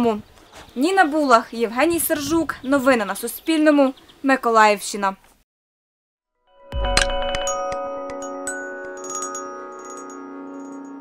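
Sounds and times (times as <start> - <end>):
news jingle with bright struck notes: 6.6 - 11.0.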